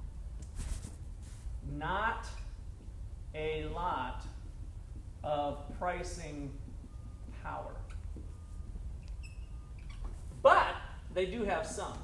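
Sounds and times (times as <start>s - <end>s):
low room hum: 0.0s - 12.0s
marker squeaking on whiteboard: 9.0s - 10.4s.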